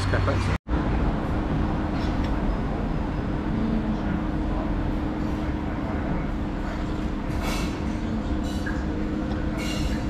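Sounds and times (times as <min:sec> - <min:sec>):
constant low hum: 0:00.0 - 0:10.0
heavy vehicle rumbling: 0:00.0 - 0:10.0.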